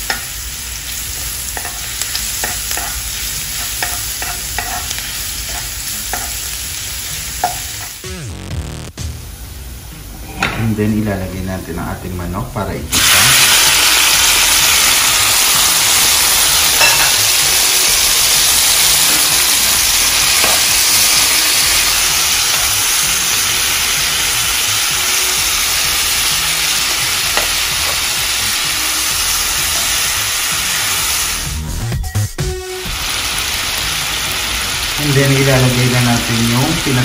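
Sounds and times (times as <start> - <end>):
chicken wings sizzling in oil: 0.0 - 8.1, 12.9 - 31.6, 32.8 - 37.0.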